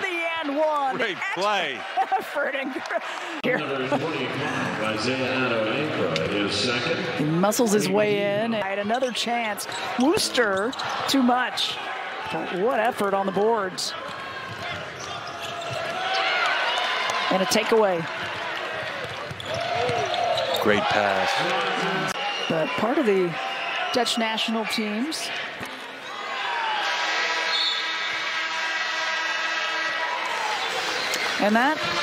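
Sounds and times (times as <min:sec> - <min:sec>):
shoes squeaking on hardwood court: 0:08.8 - 0:11.2, 0:14.0 - 0:16.4, 0:19.0 - 0:20.9
ball bouncing: 0:18.2 - 0:20.1.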